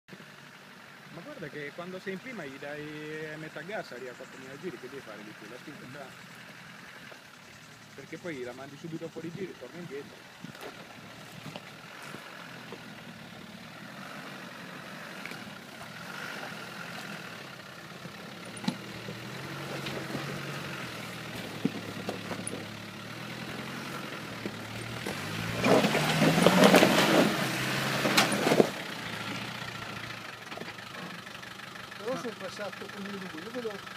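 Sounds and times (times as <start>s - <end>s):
diesel engine pulling uphill: 0.1s - 33.9s
rocks knocking under tyres: 18.5s - 22.8s, 24.4s - 27.2s.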